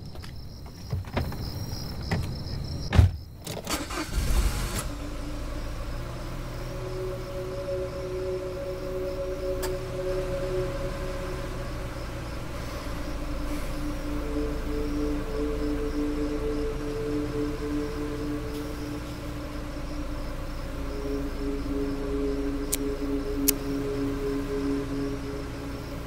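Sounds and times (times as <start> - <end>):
crickets chirping: 0.0 - 26.0
car engine starting and running: 3.4 - 26.0
low drone: 4.0 - 26.0.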